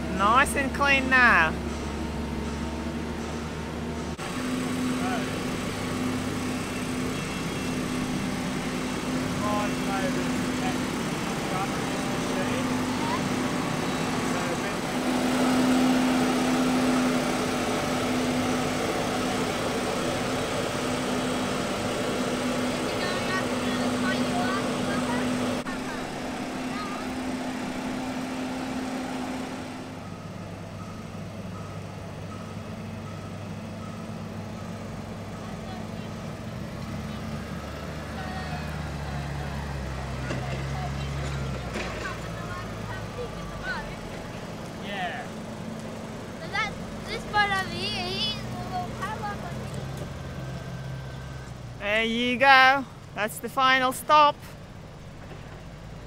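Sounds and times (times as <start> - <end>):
diesel engine running: 0.0 - 56.0.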